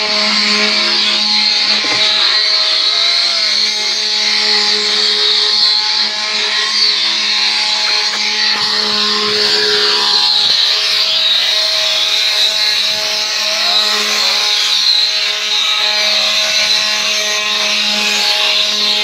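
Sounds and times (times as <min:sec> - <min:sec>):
wooden cart axle squealing: 0:00.0 - 0:19.0.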